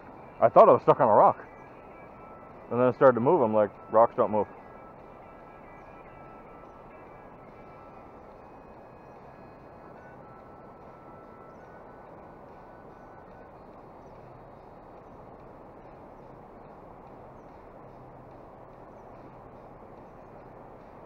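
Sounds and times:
river flowing: 0.0 - 21.0.

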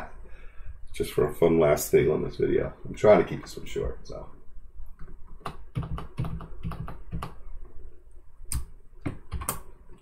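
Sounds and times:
computer keyboard keystrokes: 5.0 - 7.4, 8.5 - 9.7.

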